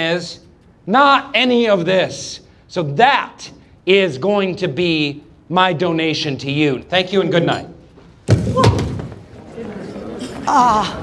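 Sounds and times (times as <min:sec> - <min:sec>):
heavy thump echoing in hall: 0:08.1 - 0:09.4
murmur of crowd: 0:09.1 - 0:11.0.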